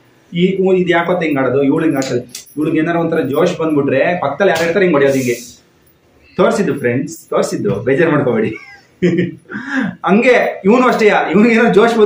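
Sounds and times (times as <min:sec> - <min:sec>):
person talking: 0:00.3 - 0:05.6, 0:06.3 - 0:08.7
high gliding vocal sound: 0:05.0 - 0:06.8.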